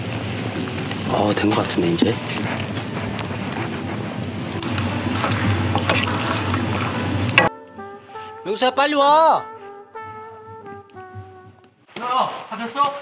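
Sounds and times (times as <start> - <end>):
sauce sizzling in a frying pan: 0.0 - 3.6, 4.2 - 7.5.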